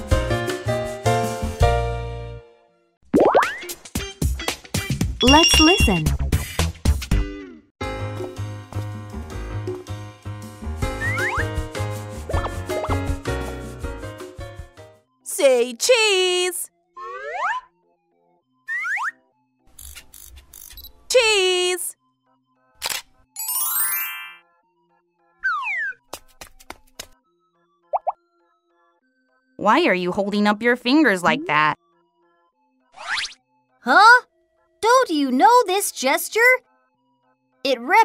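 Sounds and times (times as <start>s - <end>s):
bright children's music: 5.2s - 6.2s, 23.3s - 24.8s
faint background music: 15.2s - 16.7s, 19.7s - 23.3s, 28.3s - 38.0s
sharp shutter-like clicks: 22.8s - 23.1s.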